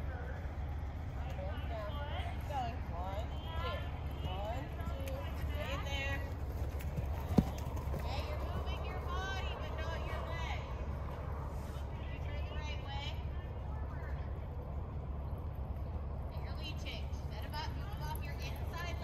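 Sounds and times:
steady low rumble: 0.0s - 19.0s
horse hoofbeats on sand: 3.7s - 9.6s.

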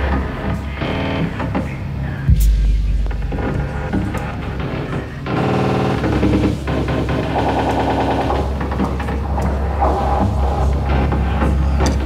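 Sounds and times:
distorted guitars: 2.2s - 7.4s
fast drum strokes: 2.3s - 6.0s
bass guitar: 2.3s - 6.8s.

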